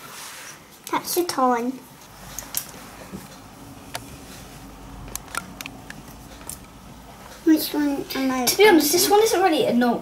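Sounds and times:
low room hum: 0.7s - 10.0s.

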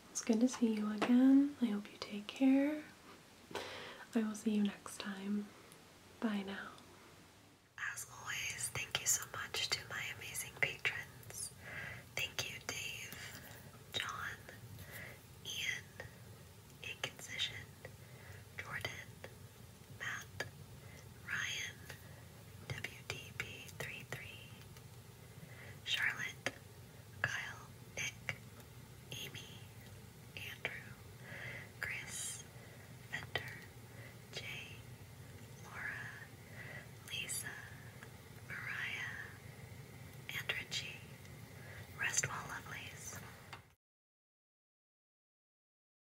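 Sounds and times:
person whispering: 0.2s - 2.9s, 4.0s - 5.5s, 6.2s - 6.8s, 7.8s - 11.6s, 12.2s - 13.4s, 14.0s - 14.6s, 15.5s - 16.1s, 16.8s - 17.7s, 18.6s - 19.3s, 20.0s - 20.5s, 21.2s - 22.0s, 22.7s - 24.6s, 25.8s - 26.6s, 27.2s - 28.4s, 29.1s - 29.7s, 30.4s - 31.0s, 31.8s - 32.5s, 33.1s - 33.7s, 34.3s - 34.8s, 35.6s - 36.3s, 37.0s - 37.9s, 38.5s - 39.4s, 40.3s - 41.0s, 41.9s - 43.2s.

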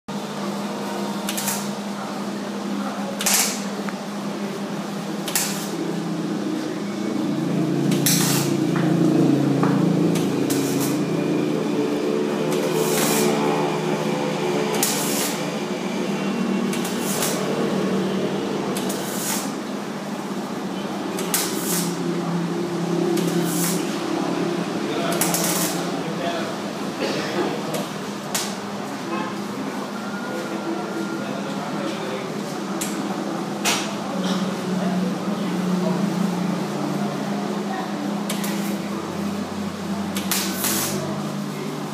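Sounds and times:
welding arc crackling: 1.2s - 1.8s, 5.2s - 6.6s, 7.4s - 19.7s, 21.0s - 26.0s, 40.2s - 41.1s.

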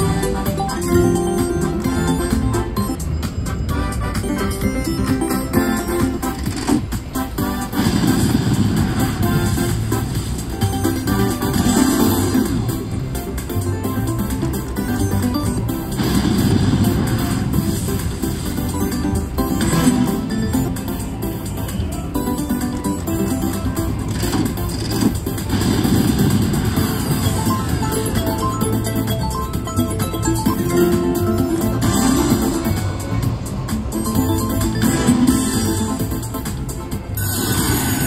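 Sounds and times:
slot machine music: 0.0s - 38.0s.

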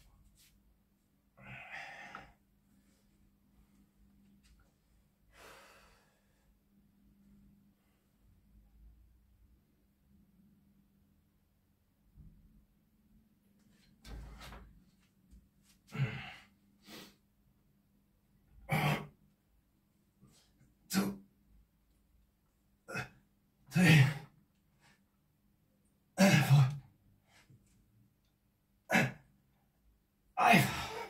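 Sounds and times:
man exhaling and grunting: 15.9s - 16.5s, 18.6s - 19.2s, 22.9s - 24.3s, 26.2s - 26.8s, 28.9s - 29.3s, 30.4s - 31.0s.

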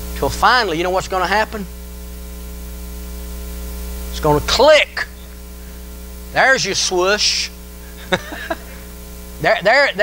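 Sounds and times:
electrical mains hum with hiss: 0.0s - 10.0s.

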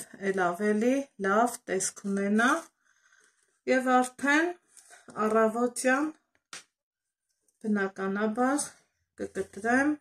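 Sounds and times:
woman speaking: 0.0s - 2.7s, 3.7s - 6.2s, 7.6s - 10.0s.

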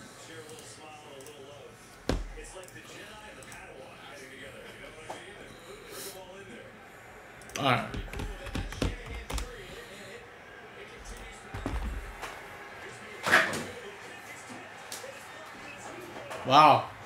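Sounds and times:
objects knocking on a desk: 2.1s - 2.4s, 7.9s - 9.5s, 11.5s - 12.3s.

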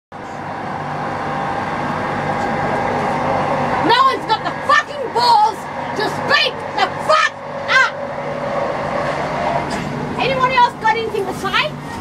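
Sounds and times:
train carriage rumble: 0.1s - 12.0s
faint humming tones: 0.2s - 12.0s.

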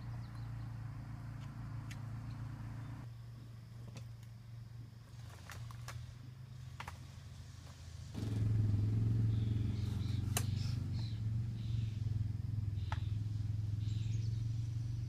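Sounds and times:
motor engine humming: 8.1s - 15.0s.

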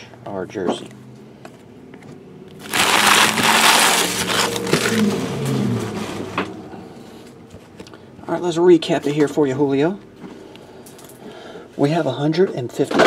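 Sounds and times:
wrappers crinkling: 2.6s - 5.1s.

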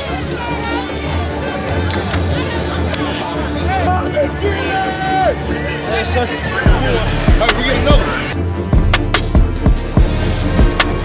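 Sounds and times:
hip-hop music with vocals: 2.4s - 11.0s
heavy pulsing bass beat: 6.7s - 11.0s.

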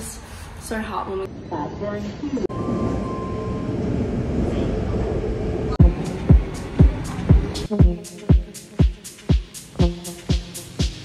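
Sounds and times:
electronic beat: 5.8s - 11.0s.

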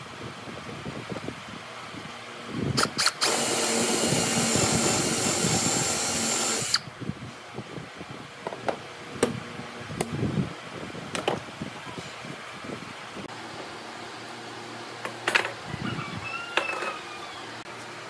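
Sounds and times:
cordless drill boring into wood: 2.8s - 6.8s.

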